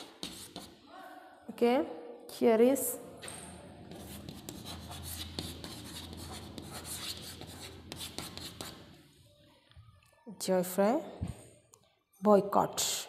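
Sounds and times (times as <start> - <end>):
chalk scratching on a chalkboard: 0.0 - 0.8, 3.8 - 8.9.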